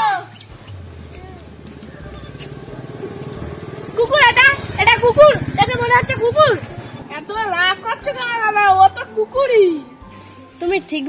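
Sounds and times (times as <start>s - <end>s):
engine running with low pulsing: 0.5s - 9.3s.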